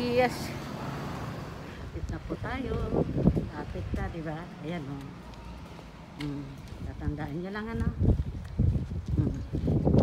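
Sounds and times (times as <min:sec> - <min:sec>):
footsteps on asphalt: 0:01.2 - 0:10.0.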